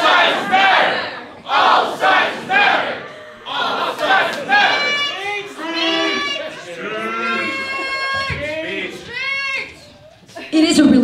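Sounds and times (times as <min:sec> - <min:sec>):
group shouting protest chant: 0:00.0 - 0:09.7.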